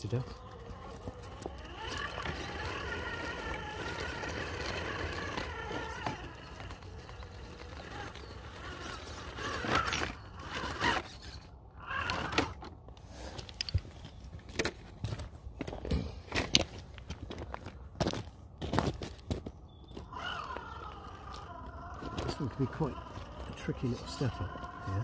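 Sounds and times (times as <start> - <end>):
electric motor whining: 0.0 - 12.7, 19.9 - 25.0.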